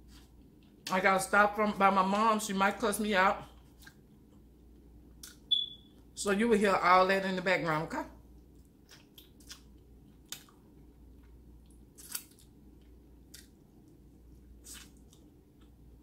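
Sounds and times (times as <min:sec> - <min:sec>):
person chewing: 0:08.4 - 0:16.0.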